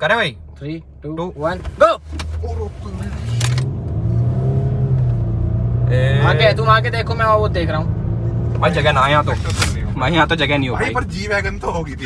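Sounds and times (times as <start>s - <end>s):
car engine accelerating hard: 1.5s - 12.0s.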